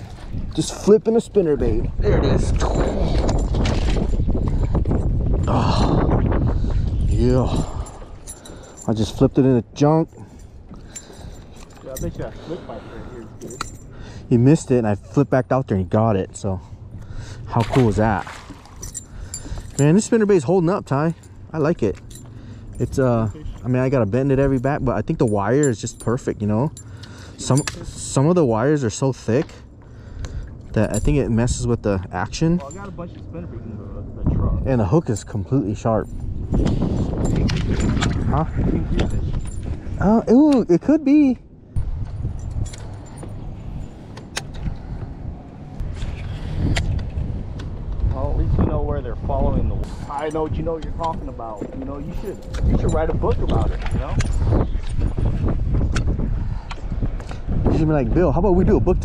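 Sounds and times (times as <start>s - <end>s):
wind rumbling on microphone: 0.0s - 15.1s, 30.0s - 59.0s
metallic clinking of fishing lure: 10.0s - 12.4s, 13.3s - 14.0s, 18.5s - 28.2s, 50.2s - 55.2s.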